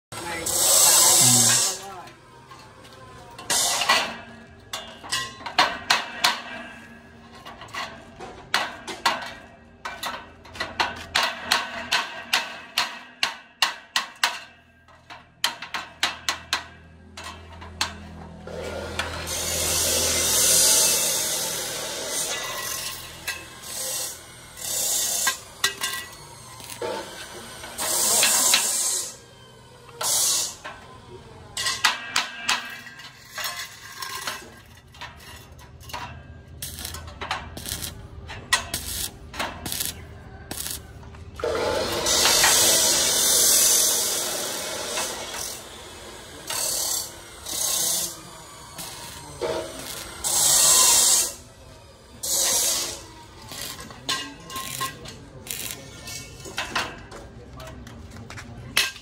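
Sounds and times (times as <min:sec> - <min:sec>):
welding arc crackling and hissing: 0:00.2 - 0:02.0, 0:19.2 - 0:29.2, 0:30.0 - 0:30.6, 0:36.6 - 0:38.0, 0:38.6 - 0:40.9, 0:41.8 - 0:51.4, 0:52.2 - 0:53.9, 0:54.6 - 0:56.3.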